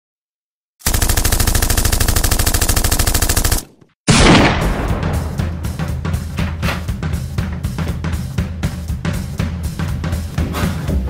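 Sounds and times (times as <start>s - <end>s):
rapid machine-gun fire: 0.8s - 5.5s.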